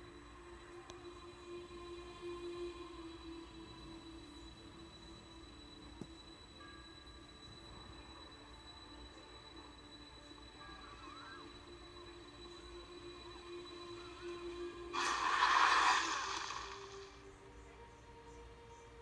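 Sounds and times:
faint sustained music: 0.0 - 19.0.

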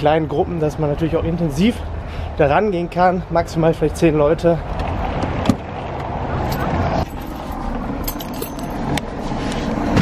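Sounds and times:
street and traffic noise: 0.0 - 10.0.

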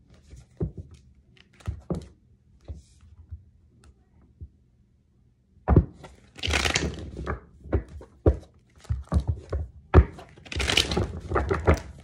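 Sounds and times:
rustling and crinkling: 6.0 - 12.0.

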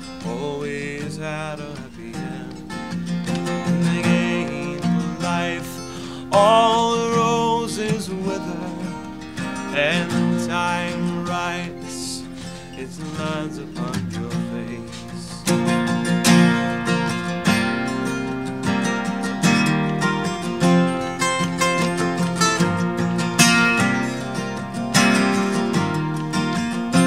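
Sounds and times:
acoustic guitar strumming: 0.0 - 27.0.

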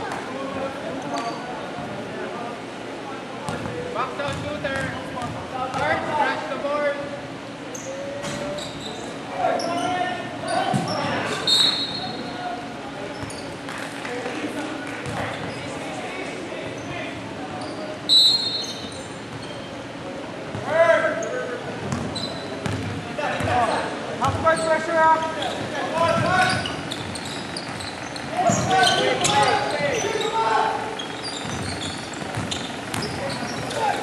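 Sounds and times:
basketball bouncing on wooden floor: 4.3 - 5.8, 31.4 - 33.8
players calling: 23.2 - 34.0
high squeaks: 26.3 - 34.0.

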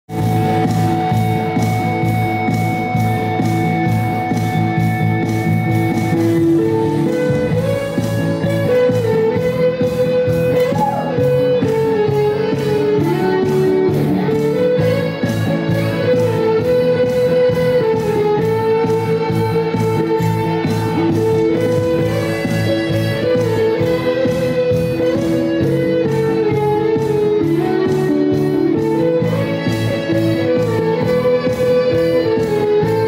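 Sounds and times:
live band instrumental: 0.1 - 33.0.

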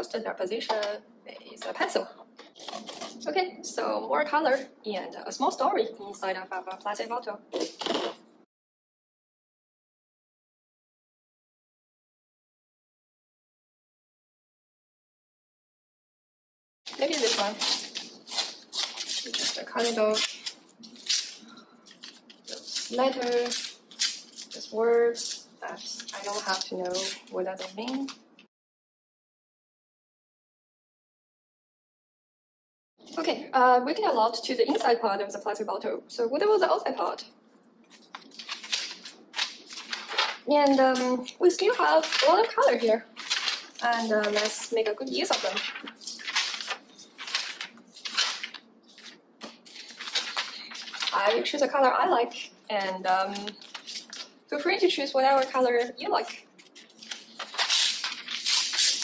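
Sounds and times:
magazine paper tearing: 16.9 - 27.3, 38.0 - 40.4, 42.0 - 44.6, 45.2 - 51.4, 56.6 - 59.0.

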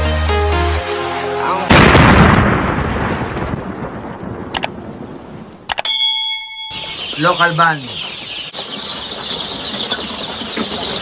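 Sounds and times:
explosion blast rumbling: 1.7 - 5.7
sharp clicks: 4.5 - 4.7, 5.7 - 5.9
short bright ding: 5.8 - 6.9.

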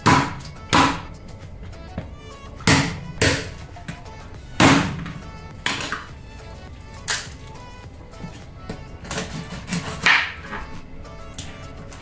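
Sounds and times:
knife chopping on cutting board: 0.0 - 1.2, 2.0 - 6.1, 8.7 - 10.7
quiet background music: 0.0 - 12.0.

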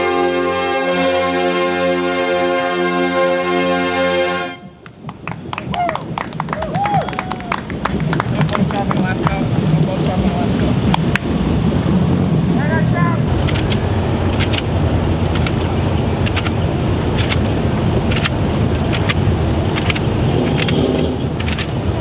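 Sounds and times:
engines idling: 7.5 - 22.0
sharp clicks: 13.3 - 14.7, 15.3 - 16.6, 17.2 - 21.8.

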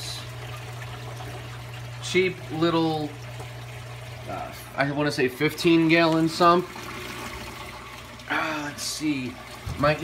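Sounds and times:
water trickling and splashing: 0.0 - 10.0.

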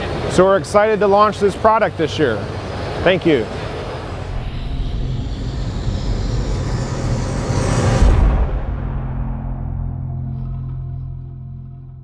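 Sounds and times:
low steady drone: 0.0 - 12.0
rush of noise to loud hit: 4.0 - 10.4.

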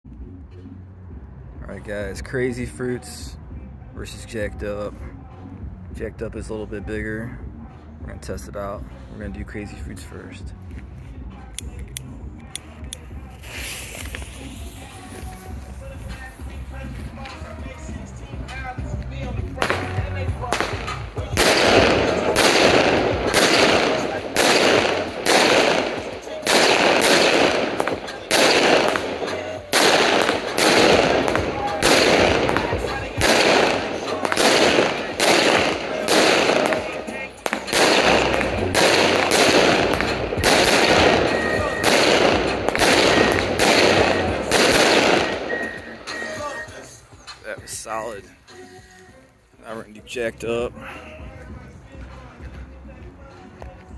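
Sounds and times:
firework bursts: 13.2 - 17.8, 19.6 - 46.6.

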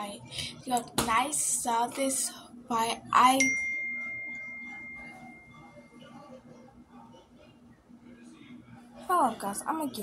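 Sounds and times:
bell-like ding: 3.4 - 5.5.

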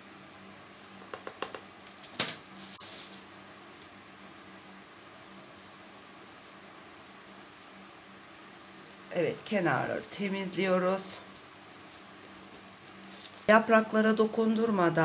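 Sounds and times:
faint steady hum: 0.0 - 15.0
soil rustling and scratching: 1.9 - 3.3, 6.9 - 13.6.

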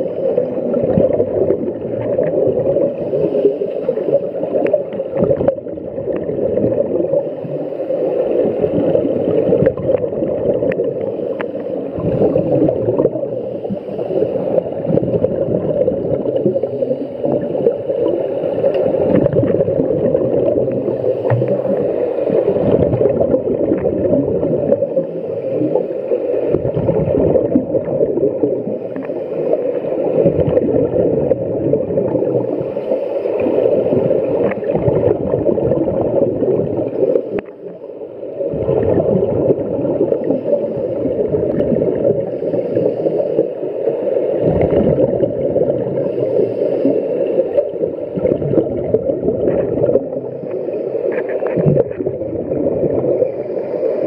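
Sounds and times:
underwater bubbles gurgling: 0.0 - 54.0.

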